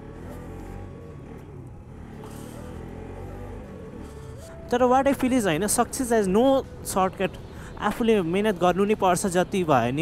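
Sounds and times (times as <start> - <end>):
motorcycle engine running: 0.0 - 7.4
faint music: 2.5 - 10.0.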